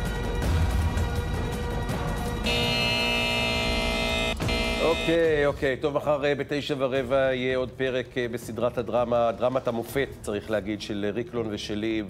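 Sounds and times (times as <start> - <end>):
theme music held chord: 0.4 - 5.4.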